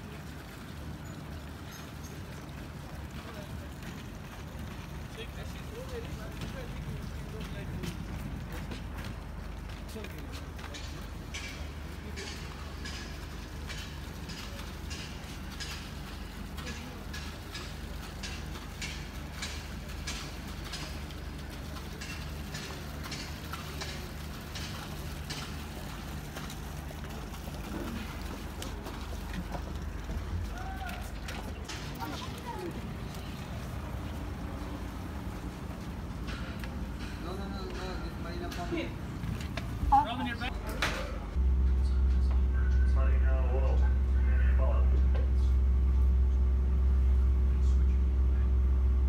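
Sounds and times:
footsteps clicking: 3.8s - 40.2s.

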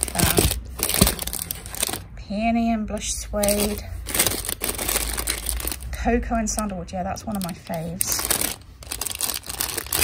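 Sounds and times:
plastic bags crinkling: 0.0s - 2.2s, 3.0s - 10.0s.

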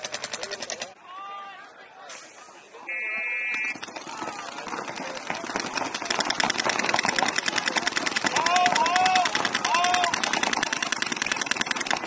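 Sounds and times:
players shouting: 2.9s - 11.6s
paintball markers firing: 3.5s - 12.0s.

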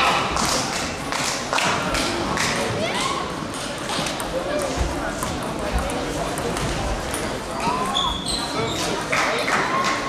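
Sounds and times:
murmur of voices: 0.0s - 10.0s.

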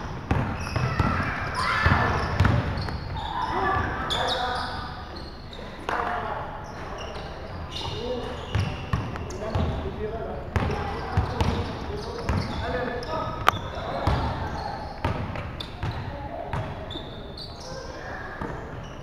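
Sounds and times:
sneakers squeaking: 0.0s - 19.0s
basketball bouncing on wooden floor: 0.3s - 1.2s, 1.8s - 3.0s.

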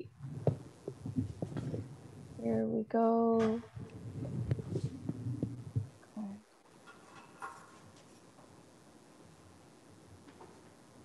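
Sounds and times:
microphone handling noise: 0.0s - 2.6s, 3.3s - 6.0s
low irregular thumps: 0.0s - 6.2s
steady hum: 0.0s - 11.0s.

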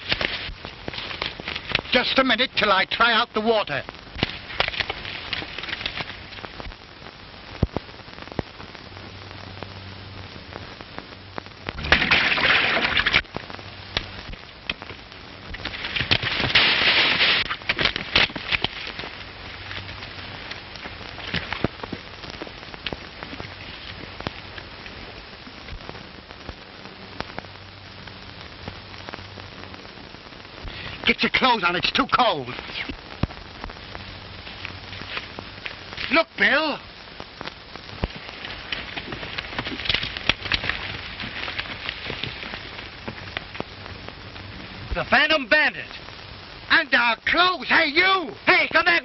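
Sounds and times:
film soundtrack hiss and crackle: 0.0s - 49.0s.

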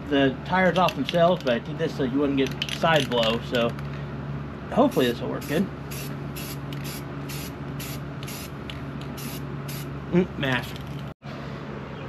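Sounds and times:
steady low hum: 0.0s - 12.0s
aerosol spray can hissing: 5.4s - 8.5s, 9.2s - 9.9s.

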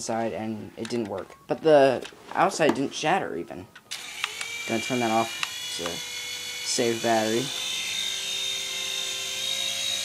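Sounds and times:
toy helicopter rotors whining: 3.9s - 10.0s.

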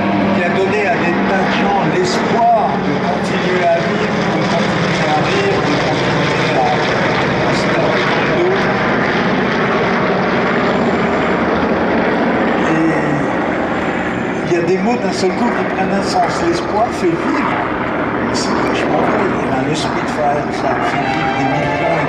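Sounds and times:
propeller aircraft engines droning: 0.0s - 22.0s.

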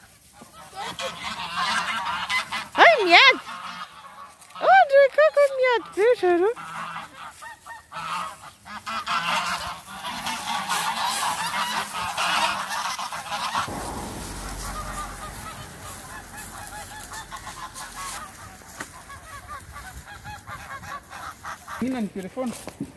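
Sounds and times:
geese honking: 6.6s - 13.8s.

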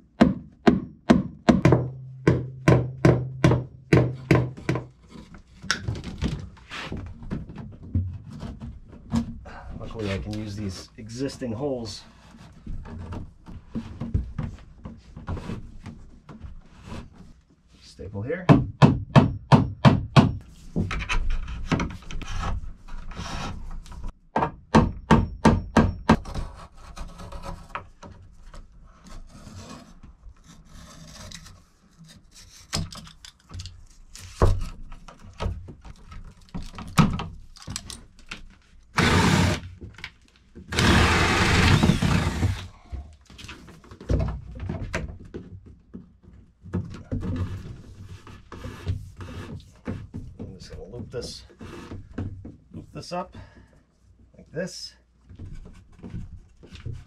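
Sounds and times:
hammer tapping staples into wood: 18.5s - 20.4s.

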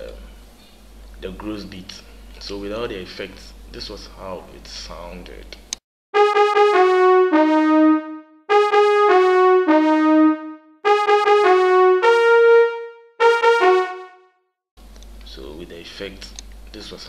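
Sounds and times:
brass instrument melody: 6.2s - 14.4s.

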